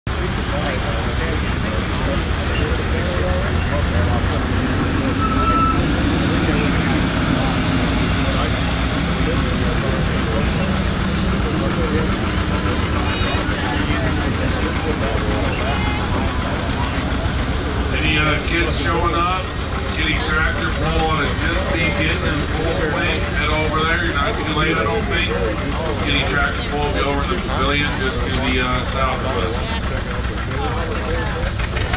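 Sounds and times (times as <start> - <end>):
faint voices: 0.1 - 31.9
tractor engine running: 0.1 - 31.9.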